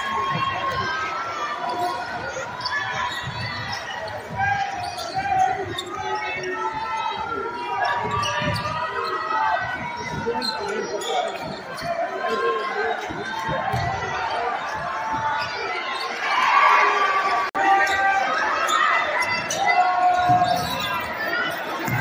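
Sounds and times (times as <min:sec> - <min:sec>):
crowd voices and shouts: 0:00.0 - 0:22.0.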